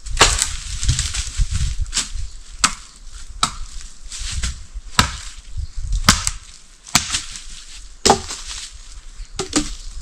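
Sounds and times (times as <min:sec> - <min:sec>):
wood chopping strikes: 0:00.1 - 0:00.6, 0:01.9 - 0:03.8, 0:04.4 - 0:05.4, 0:06.0 - 0:08.7, 0:09.4 - 0:09.8.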